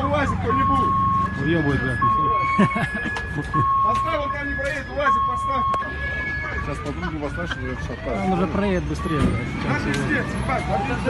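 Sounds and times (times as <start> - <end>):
police siren two-tone wail: 0.0 - 11.0.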